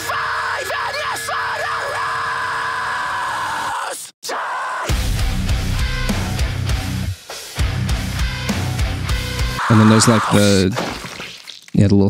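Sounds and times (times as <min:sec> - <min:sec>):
metalcore song with screamed vocals: 0:00.0 - 0:10.7.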